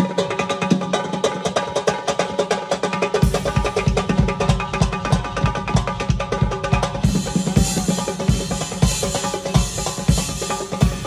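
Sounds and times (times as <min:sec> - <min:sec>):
hand drum played fast: 0:00.0 - 0:11.0
band melody: 0:03.2 - 0:11.0.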